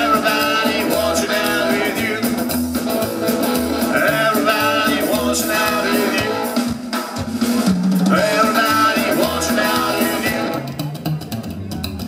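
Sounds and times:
drum kit: 0:00.0 - 0:12.0
psychobilly band playing: 0:00.0 - 0:12.0.

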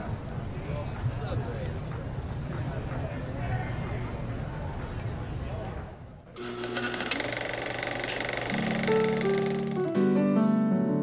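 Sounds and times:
fast mechanical rattle: 0:06.4 - 0:09.9.

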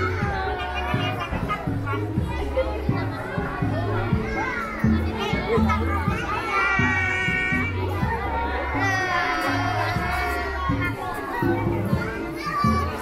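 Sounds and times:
children's voices: 0:00.0 - 0:13.0
crowd chatter and calls: 0:00.0 - 0:13.0.

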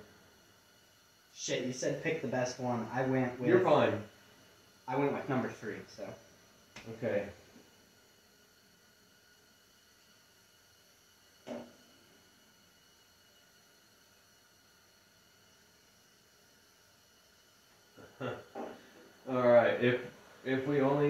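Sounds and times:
laughter: 0:18.0 - 0:18.5.

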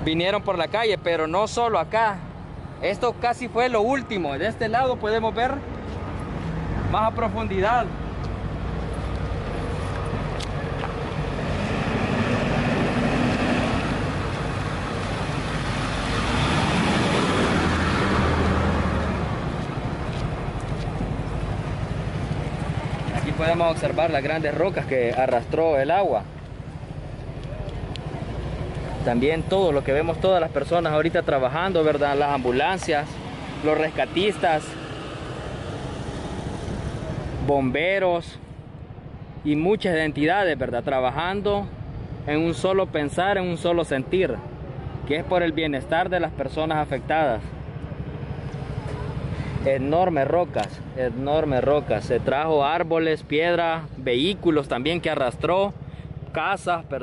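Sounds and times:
road traffic: 0:00.0 - 0:57.0
engine hum: 0:04.2 - 0:57.0.

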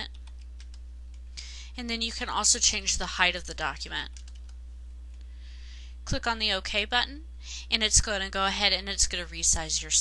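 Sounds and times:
computer keyboard keystrokes: 0:00.0 - 0:01.2, 0:04.1 - 0:04.6
low electrical hum: 0:00.0 - 0:10.0.

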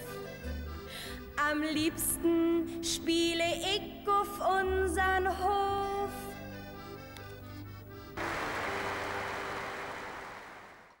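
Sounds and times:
audience applauding: 0:08.2 - 0:11.0.

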